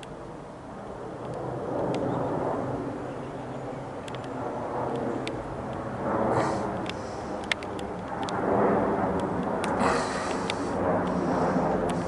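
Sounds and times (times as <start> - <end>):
jet airliner passing overhead: 0.0 - 12.0.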